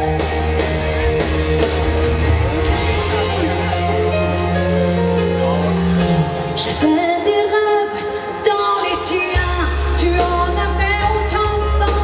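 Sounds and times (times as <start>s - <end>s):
band accompaniment: 0.0s - 12.0s
woman singing into a microphone: 6.6s - 12.0s.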